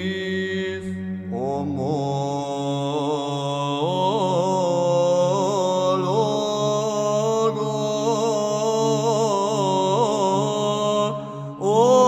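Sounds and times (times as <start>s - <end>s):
ornamented chanted melody: 0.0s - 12.0s.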